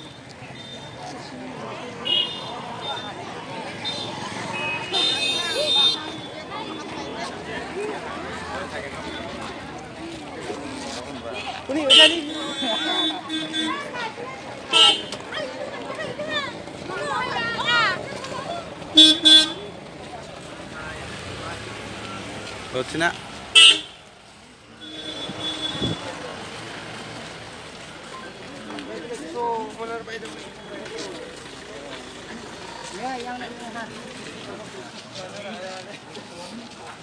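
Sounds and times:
crowd voices: 0.0s - 37.0s
street noise: 0.0s - 37.0s
vehicle horn toots: 23.6s - 24.0s, 24.8s - 26.0s.

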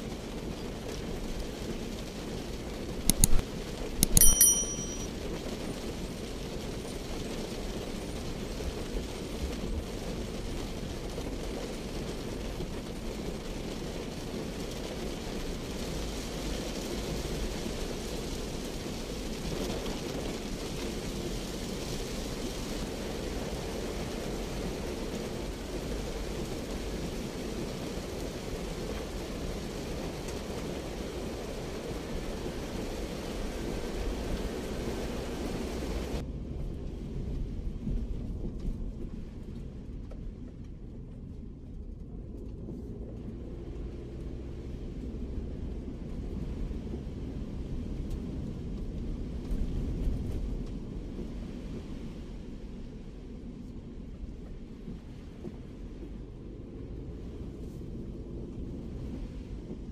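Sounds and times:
heavy rain on car roof: 0.0s - 3.9s, 5.2s - 43.2s, 43.9s - 59.9s.

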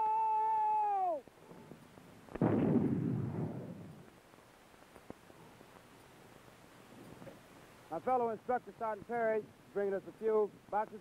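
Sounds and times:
rumbling echoing explosion tail: 2.3s - 4.1s.

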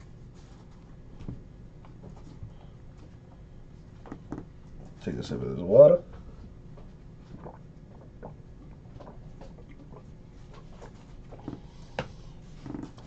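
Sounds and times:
person sipping water: 7.3s - 13.0s.

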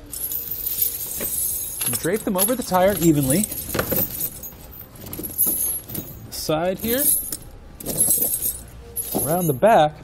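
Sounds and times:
tire chains jingling and clinking: 0.0s - 9.8s.

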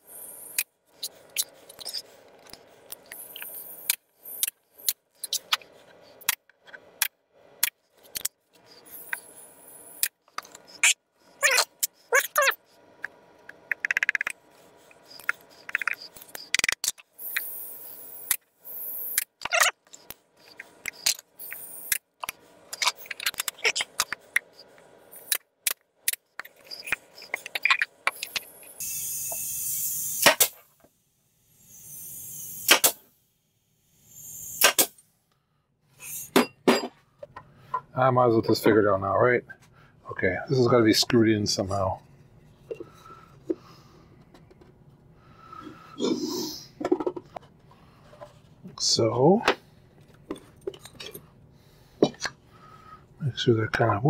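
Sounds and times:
nail gun shots into wood: 30.2s - 30.6s, 32.6s - 33.0s, 34.6s - 35.0s.

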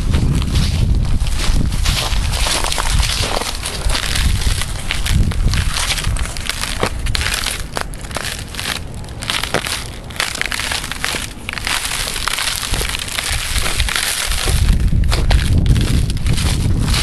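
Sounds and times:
footsteps crunching on thin ice: 0.0s - 17.0s
low rumble: 0.0s - 17.0s.

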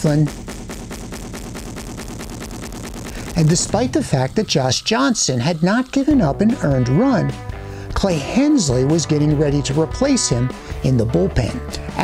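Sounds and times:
fast percussive background music: 0.0s - 12.0s.

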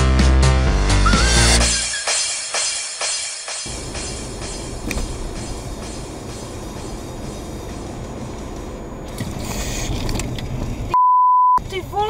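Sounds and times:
car road and engine rumble: 3.7s - 11.0s, 11.6s - 12.0s.

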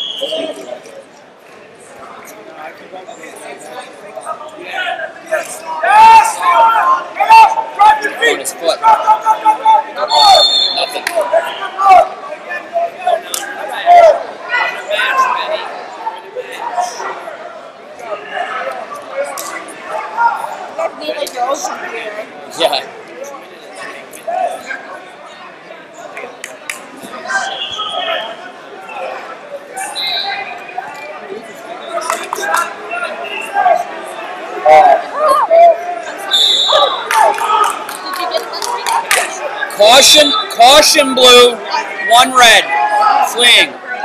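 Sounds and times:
indistinct voices in a hall: 0.0s - 44.0s.

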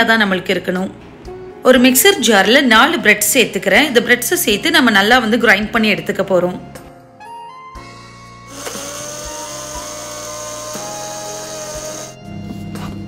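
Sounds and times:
background music: 0.0s - 13.0s
mixer grinder motor whine: 8.5s - 12.2s.

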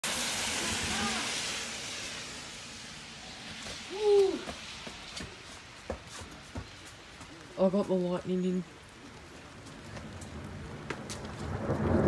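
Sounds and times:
car tyres hissing on wet road: 0.0s - 7.6s, 8.8s - 12.0s.

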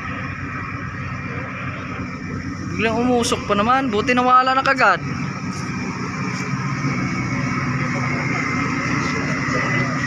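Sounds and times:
diesel engines humming: 0.0s - 10.0s
faint high whine: 0.0s - 10.0s.

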